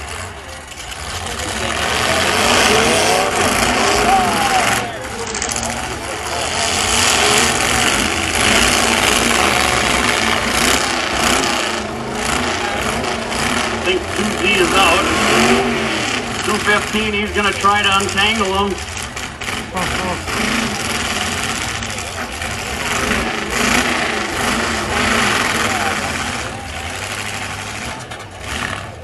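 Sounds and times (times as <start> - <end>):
truck engines running rough: 0.0 - 29.0.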